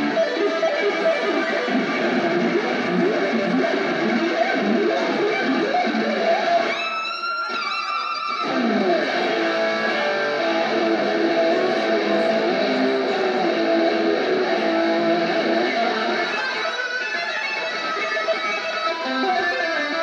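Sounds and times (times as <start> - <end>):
electric guitar through amplifier: 0.0 - 20.0.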